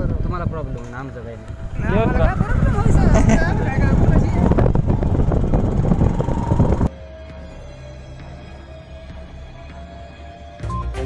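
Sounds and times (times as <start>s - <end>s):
loud rumbling noise: 0.0s - 6.9s.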